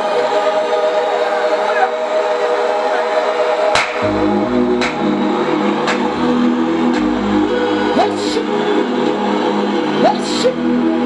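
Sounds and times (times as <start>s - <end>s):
sustained synth chords: 3.2s - 11.0s
sharp drum hit: 3.8s - 5.2s.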